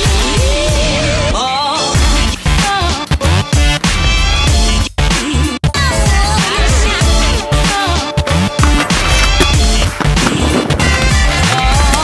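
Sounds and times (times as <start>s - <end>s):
skates grinding on metal rail: 8.3s - 12.0s.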